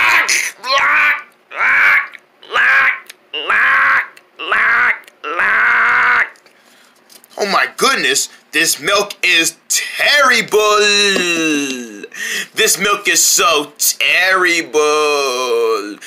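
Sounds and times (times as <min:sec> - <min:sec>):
person making swooping vocal noises: 0:00.0 - 0:01.3.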